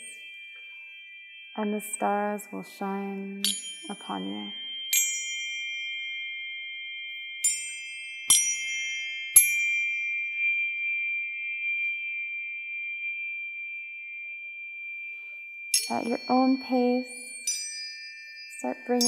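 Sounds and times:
tuning forks ringing: 0.0 - 19.0.

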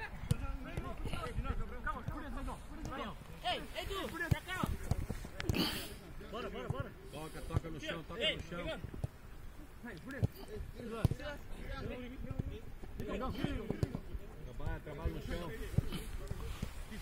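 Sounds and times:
players calling and shouting: 0.0 - 17.0.

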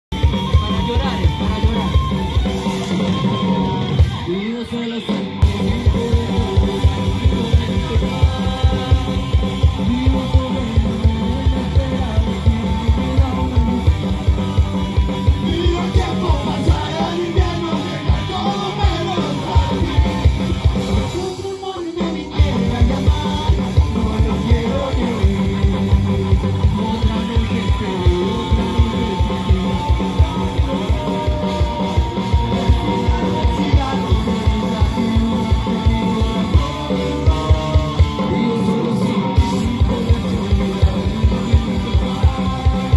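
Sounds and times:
electric guitars: 0.0 - 42.9
steady drumbeat: 0.1 - 42.9.

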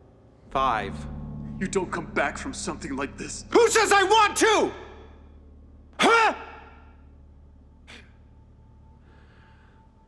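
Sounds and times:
faint breath: 8.9 - 10.0.

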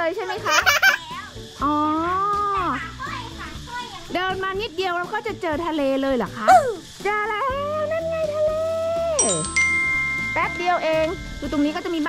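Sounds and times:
quiet background music: 0.0 - 12.0
drawn-out vocal exclamation: 6.5 - 6.8.

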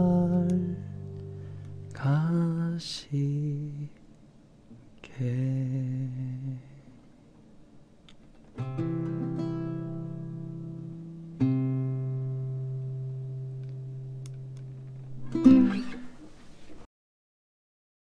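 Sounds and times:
classical guitar chords: 0.0 - 2.0, 8.6 - 16.2.

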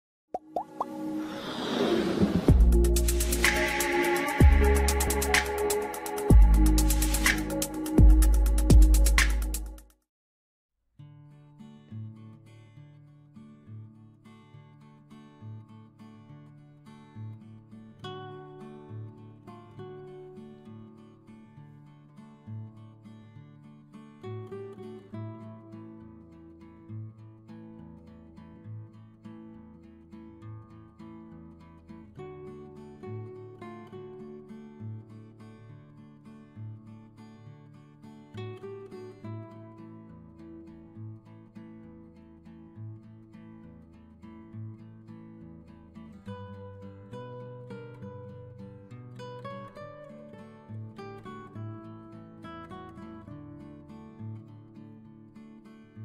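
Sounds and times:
quick rising plops: 0.4 - 2.6
whoosh: 0.6 - 7.6
held musical note: 2.0 - 9.0
pulsing bass line: 2.5 - 3.8, 4.4 - 5.7, 6.3 - 9.8
acoustic guitar music: 2.5 - 9.8, 11.0 - 56.0.

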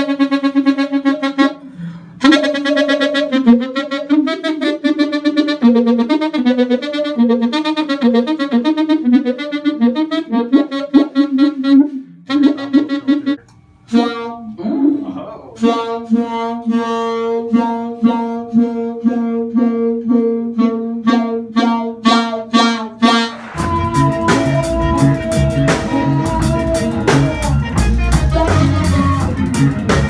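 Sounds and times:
saxophone through effects pedals: 0.0 - 30.0.

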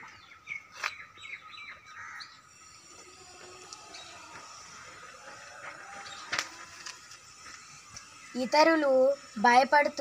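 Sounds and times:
small birds chirping faintly: 0.0 - 10.0.

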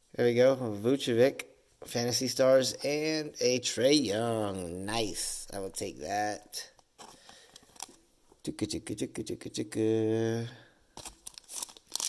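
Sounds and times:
foil wrapper crinkling: 7.0 - 8.0, 11.0 - 12.0.

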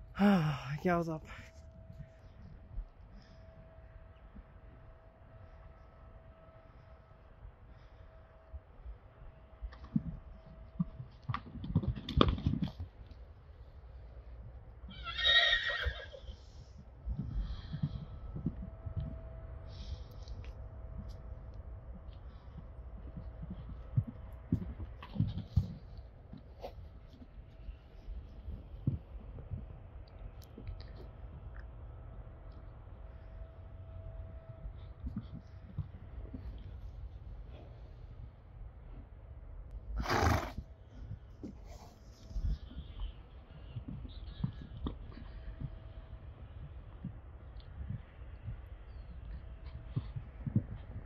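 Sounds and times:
horse whinnying: 14.9 - 16.3, 40.0 - 40.6.

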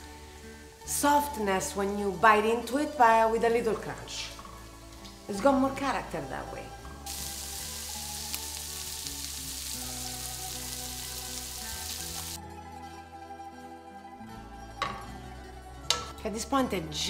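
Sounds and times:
background music: 0.0 - 17.0
meat sizzling in a pan: 6.8 - 12.4.

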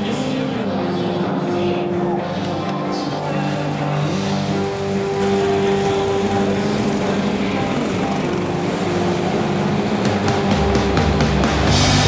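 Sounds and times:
go-kart engines revving: 2.1 - 12.0.

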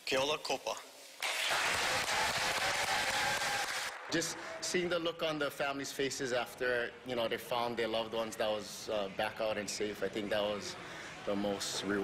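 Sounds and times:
audience applauding: 1.2 - 4.7.

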